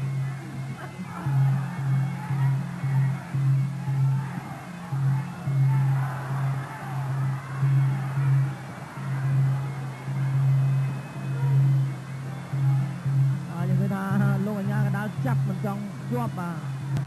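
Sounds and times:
low pulsing beat: 0.0 - 17.0
wavering wind melody: 0.0 - 17.0.

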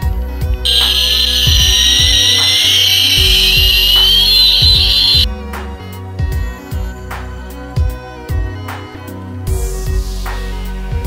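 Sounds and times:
background music with steady beat: 0.0 - 11.0
electronic jet engine whine: 0.5 - 5.3.

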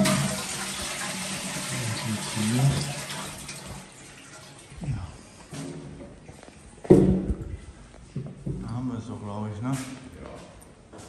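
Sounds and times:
water running in a bathroom: 0.0 - 5.5.

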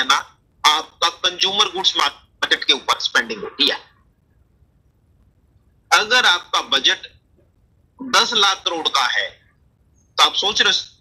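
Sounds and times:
man speaking: 0.0 - 4.0, 5.9 - 7.2, 8.0 - 9.4, 10.2 - 11.0
faint low hum: 0.0 - 11.0.

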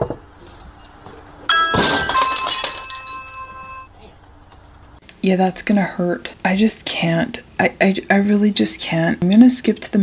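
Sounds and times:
ringing chiming tones: 0.8 - 3.9
crash: 1.5 - 3.9.

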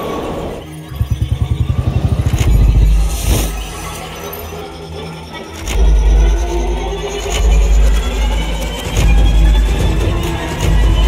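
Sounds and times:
motorcycle engine pulsing: 0.6 - 4.0.

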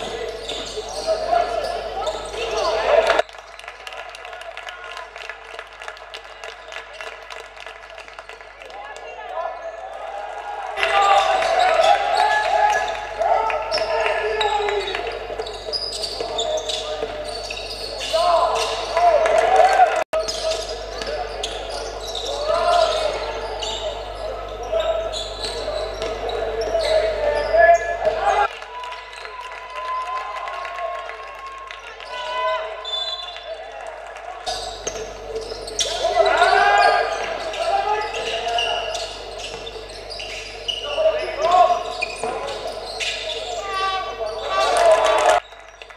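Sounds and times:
sneakers squeaking on floor: 0.0 - 3.2, 10.9 - 19.2, 20.2 - 28.5, 34.5 - 45.9
players and spectators voices: 0.0 - 45.9.

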